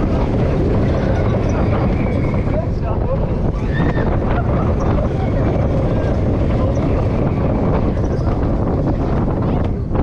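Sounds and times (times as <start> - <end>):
roller coaster wheels rumbling: 0.0 - 10.0
wind buffeting microphone: 0.0 - 10.0.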